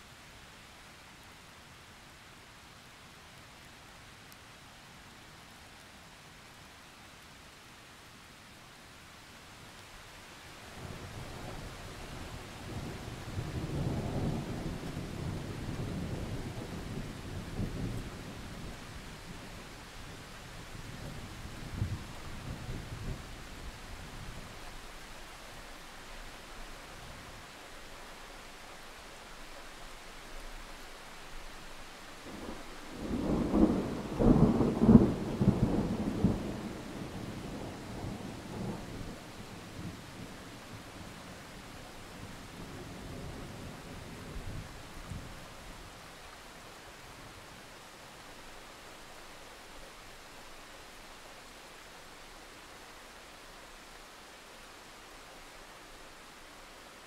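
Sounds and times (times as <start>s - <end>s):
heavy rain: 0.0s - 57.0s
crackling thunder peal: 32.4s - 39.2s
rolling thunder: 32.4s - 40.0s.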